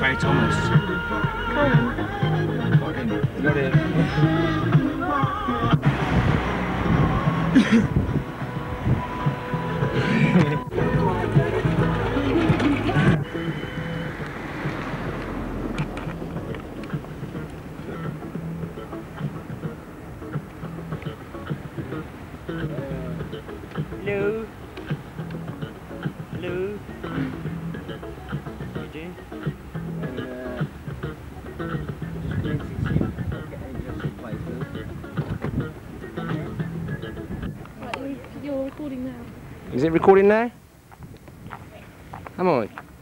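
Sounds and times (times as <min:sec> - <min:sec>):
music with voices: 0:00.0 - 0:40.0.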